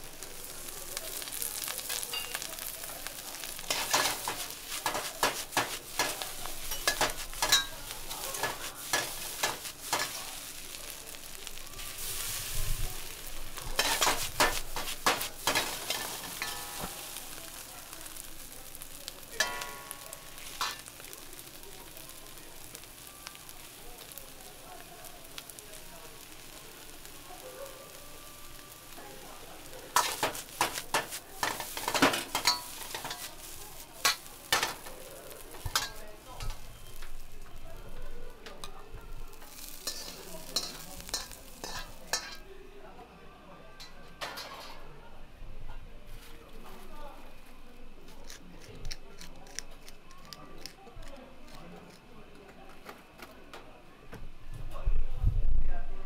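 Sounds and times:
rice sizzling in a wok: 0:00.0 - 0:43.2, 0:43.8 - 0:48.1
metal ladle scraping a wok: 0:03.6 - 0:10.5, 0:13.8 - 0:17.1, 0:39.4 - 0:42.4.

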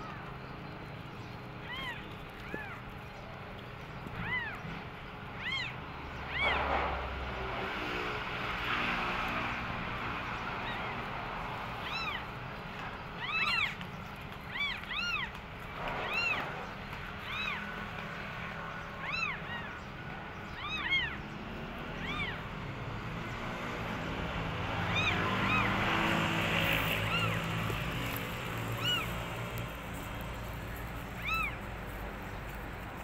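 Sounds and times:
kittens mewing: 0:01.6 - 0:02.9, 0:04.1 - 0:07.1, 0:10.5 - 0:12.4, 0:13.2 - 0:13.8, 0:14.4 - 0:16.6, 0:17.2 - 0:17.8, 0:18.8 - 0:22.6, 0:24.8 - 0:31.9.

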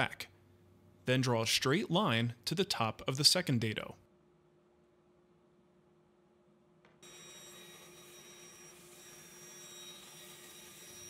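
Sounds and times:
bandsaw running: 0:07.0 - 0:11.0.

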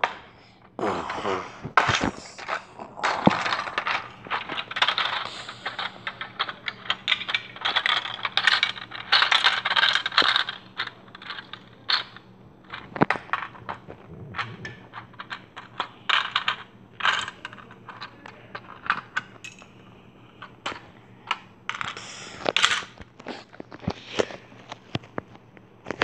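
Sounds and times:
plastic bricks clicking and clattering: 0:01.2 - 0:19.7, 0:20.4 - 0:24.3.

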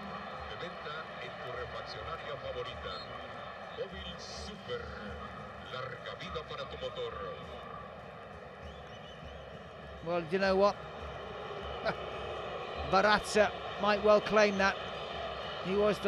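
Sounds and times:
murmur of crowd voices: 0:00.0 - 0:16.0.

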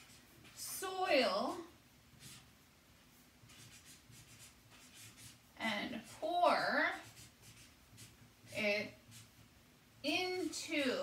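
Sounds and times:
marker scratching on paper: 0:00.0 - 0:09.5, 0:10.1 - 0:11.0
woman speaking slowly: 0:00.6 - 0:01.7, 0:05.6 - 0:07.0, 0:08.5 - 0:09.0, 0:10.0 - 0:11.0.

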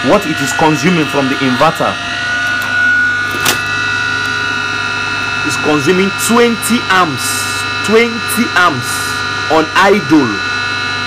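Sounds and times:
electric motor humming and whining: 0:00.0 - 0:11.0.

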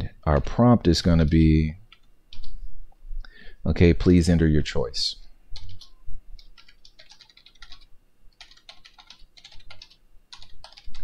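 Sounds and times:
computer keyboard typing: 0:01.9 - 0:02.6, 0:05.6 - 0:11.0.

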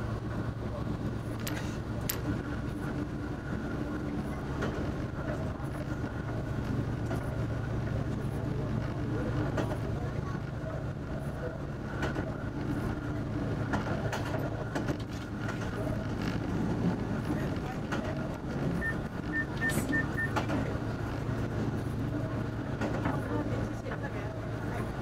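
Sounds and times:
diesel engine drone: 0:00.0 - 0:25.0
wheels clacking over rails: 0:13.4 - 0:23.3.

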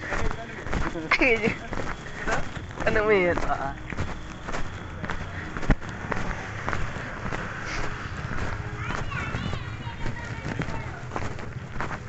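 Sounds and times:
footsteps on dirt road: 0:00.0 - 0:12.0
low microphone rumble: 0:02.6 - 0:12.0.

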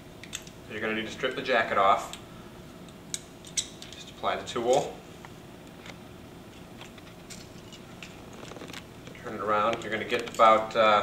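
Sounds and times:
low steady hiss: 0:00.0 - 0:11.0.

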